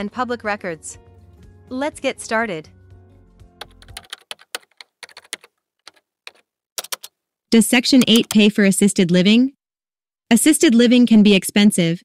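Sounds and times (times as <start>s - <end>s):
keyboard typing: 3.6s - 7.2s, 7.9s - 8.6s.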